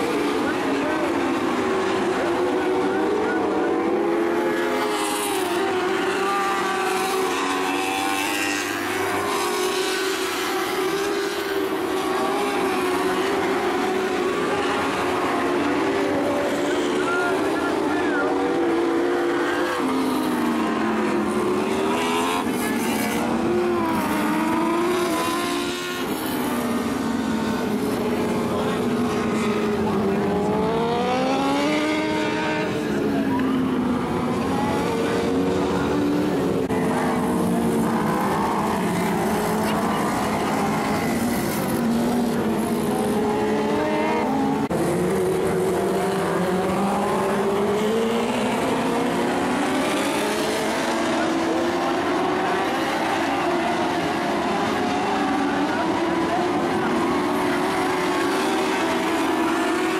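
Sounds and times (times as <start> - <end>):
racing car engines: 0.0 - 59.9.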